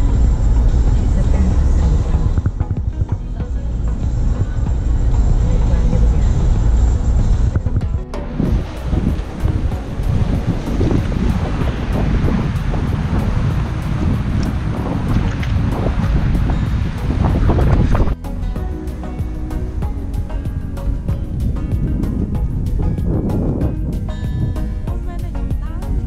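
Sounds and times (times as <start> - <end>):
car road rumble: 0.0 - 26.0
wind buffeting microphone: 0.0 - 26.0
surf washing onto rocks: 8.4 - 18.2.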